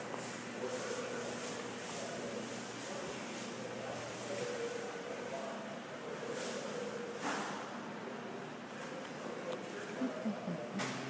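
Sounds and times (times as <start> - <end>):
indoor mall background noise: 0.0 - 11.0.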